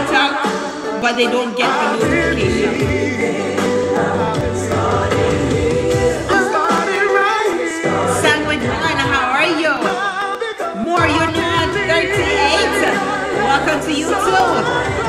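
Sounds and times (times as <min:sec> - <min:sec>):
woman singing into microphone: 0:00.0 - 0:04.8, 0:08.0 - 0:15.0
backing track music: 0:00.0 - 0:15.0.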